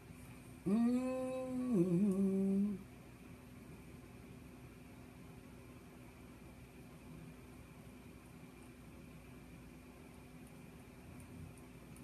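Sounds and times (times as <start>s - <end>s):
woman humming: 0.6s - 2.8s.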